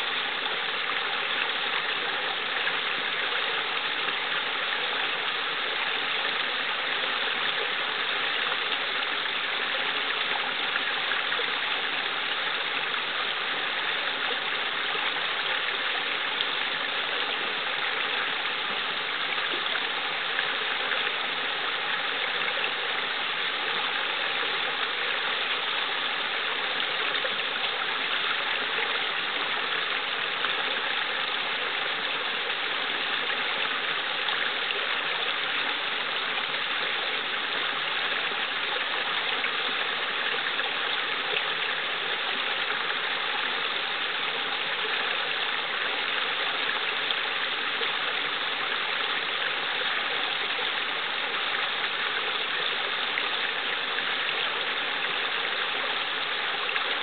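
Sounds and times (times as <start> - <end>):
brook running: 0.0 - 57.0
water spilling over rocks: 0.0 - 57.0.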